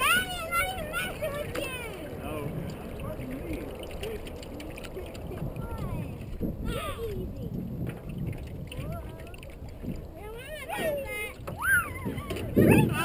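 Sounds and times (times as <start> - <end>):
faint distant voices: 0.0 - 13.0
wind rumble on microphone: 0.0 - 13.0.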